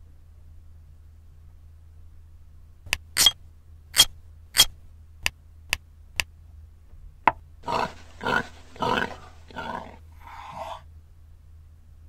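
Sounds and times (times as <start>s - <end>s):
animal-like growling bursts: 7.6s - 10.8s.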